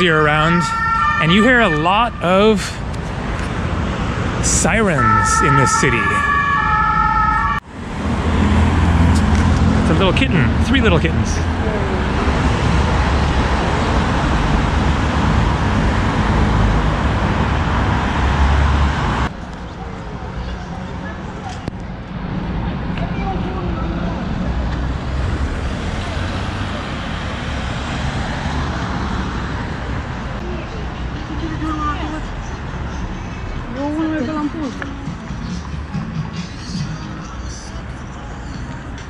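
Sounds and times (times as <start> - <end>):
street traffic rumble: 0.0 - 39.0
faint voices of passers-by: 9.2 - 14.8, 19.3 - 27.5, 29.4 - 39.0.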